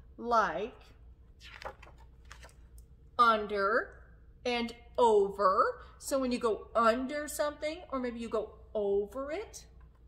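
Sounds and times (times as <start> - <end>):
book pages being turned: 1.4 - 2.8.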